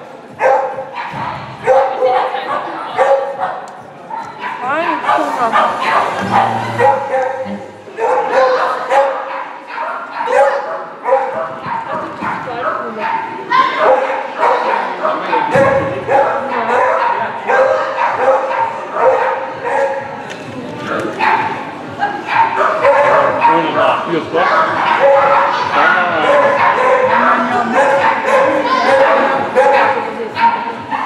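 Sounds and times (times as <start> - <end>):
people's voices: 0.0 - 31.0
dog barking and yipping: 0.4 - 3.5, 4.4 - 14.9, 22.3 - 23.7, 24.5 - 31.0.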